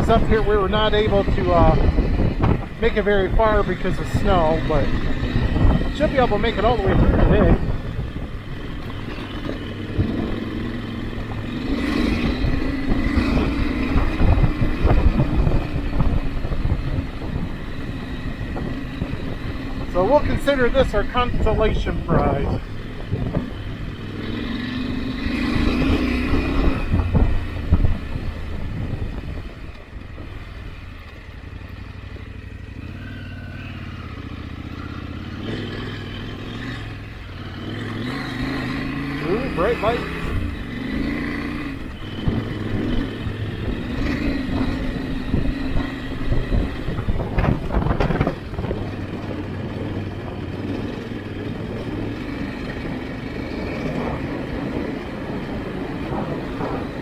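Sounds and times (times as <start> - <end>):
motorcycle engine running: 0.0 - 57.0.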